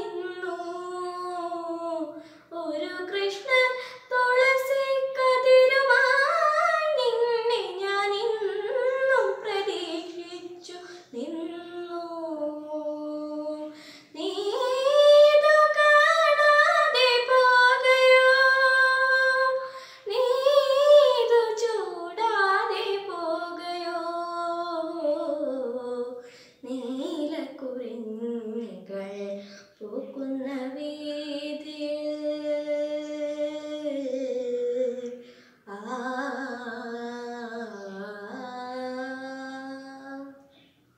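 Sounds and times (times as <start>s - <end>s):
girl singing unaccompanied: 0.0s - 40.7s.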